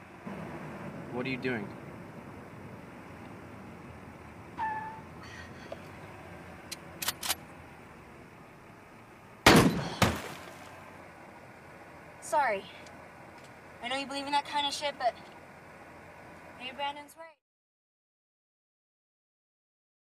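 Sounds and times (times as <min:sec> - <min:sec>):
steady low hum: 0:00.0 - 0:17.3
heavy thuds with ringing tail: 0:09.4 - 0:10.4.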